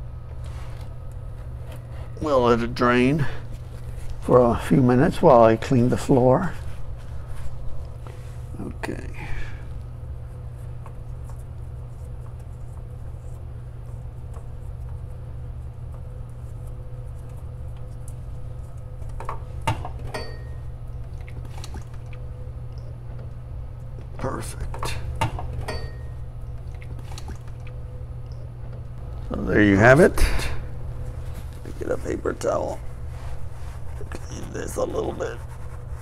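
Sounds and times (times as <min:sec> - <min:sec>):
steady low hum: 0:00.0 - 0:36.0.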